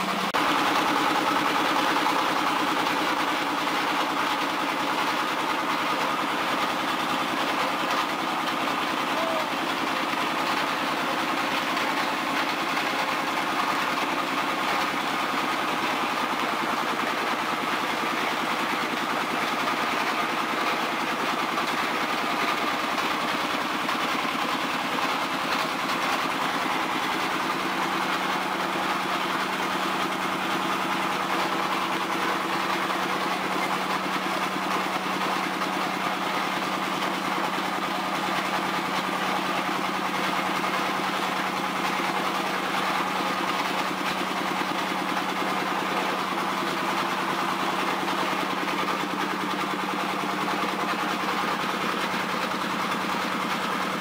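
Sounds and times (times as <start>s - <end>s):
oil expeller machine humming: 0.0s - 54.0s.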